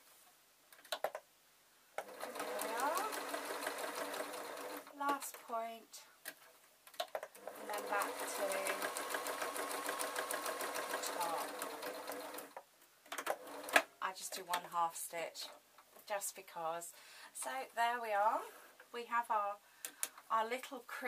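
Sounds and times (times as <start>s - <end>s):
sewing machine stitching: 2.0s - 4.9s, 7.3s - 12.6s, 13.2s - 13.8s.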